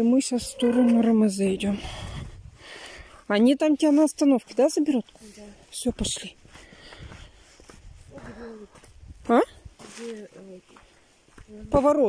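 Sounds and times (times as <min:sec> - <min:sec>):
people talking outdoors: 0:00.0 - 0:12.0.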